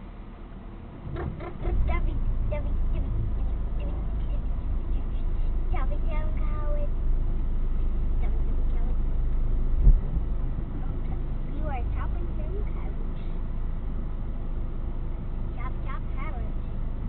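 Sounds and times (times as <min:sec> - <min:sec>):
car engine rumble from inside: 0:00.0 - 0:17.0
low thump: 0:09.8 - 0:10.3.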